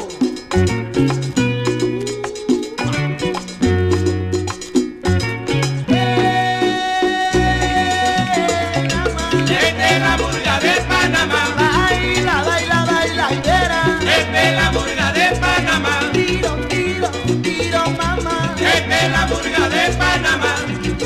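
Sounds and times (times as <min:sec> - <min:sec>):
salsa band instrumental: 0:00.0 - 0:21.0.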